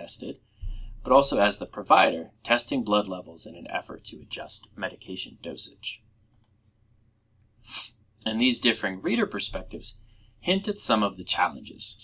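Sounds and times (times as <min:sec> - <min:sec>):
faint low hum: 0:00.0 - 0:12.0
person breathing in: 0:00.5 - 0:01.0.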